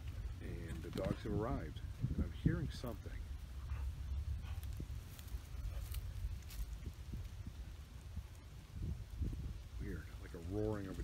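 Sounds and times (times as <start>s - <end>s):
faint rustles: 0.0s - 11.0s.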